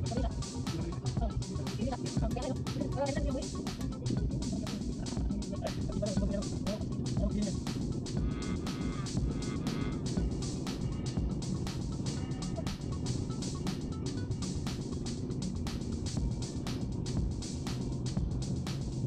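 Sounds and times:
music with singing voice: 0.0s - 19.0s.

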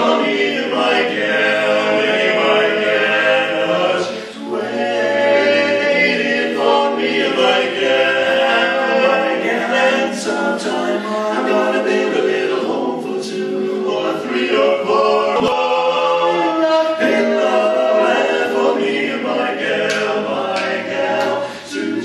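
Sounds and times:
male quartet singing a cappella: 0.0s - 22.0s.

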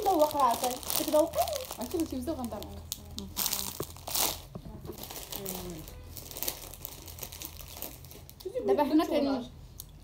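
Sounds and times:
plastic snack packet crinkling: 0.0s - 8.9s.

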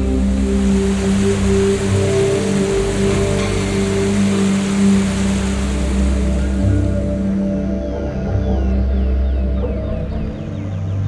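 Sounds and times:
ambient music with low tones: 0.0s - 11.0s
rushing mountain stream: 0.0s - 11.0s.

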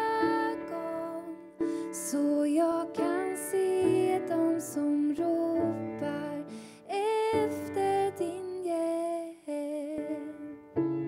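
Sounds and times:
woman singing worship song: 0.0s - 10.4s
piano accompaniment: 0.0s - 11.0s.

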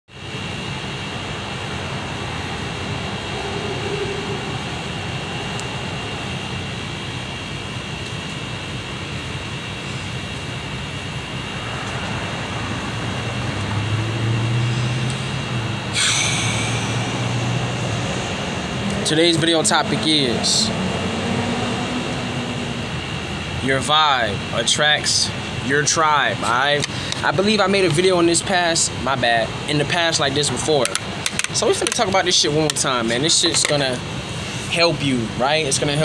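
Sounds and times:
low hum: 0.1s - 24.6s
rush of noise: 0.1s - 27.4s
mechanical drone with high whine: 0.1s - 36.0s.

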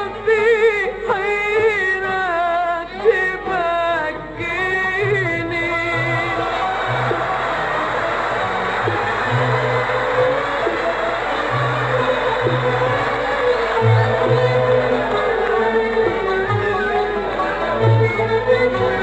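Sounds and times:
audience applause and cheering: 5.9s - 19.0s
orchestra playing: 6.0s - 19.0s.

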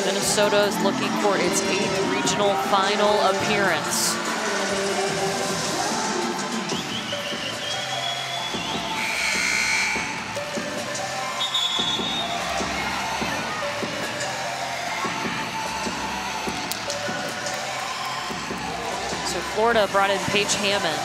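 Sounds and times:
arena music over loudspeakers: 0.0s - 21.0s.

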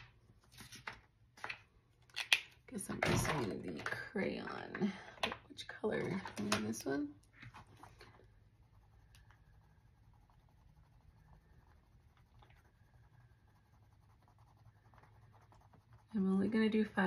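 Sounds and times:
crayon scratching on paper: 7.4s - 17.0s.

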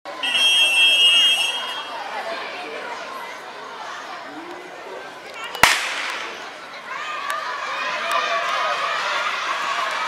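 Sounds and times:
crowd voices: 0.1s - 10.0s
whistle blast: 0.2s - 1.9s.

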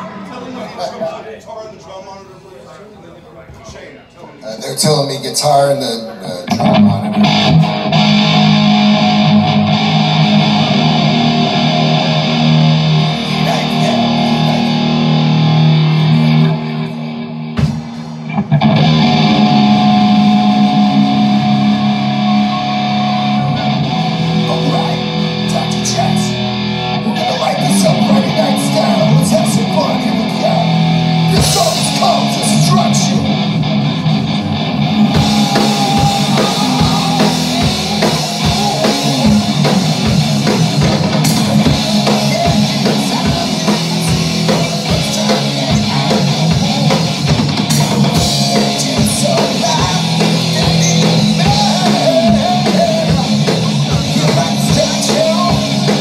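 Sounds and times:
electric guitar: 6.2s - 56.0s
live rock band playing: 6.3s - 56.0s.

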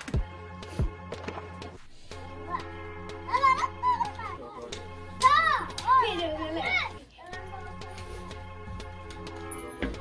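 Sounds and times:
child calling out playfully: 3.3s - 4.4s, 5.2s - 7.8s.

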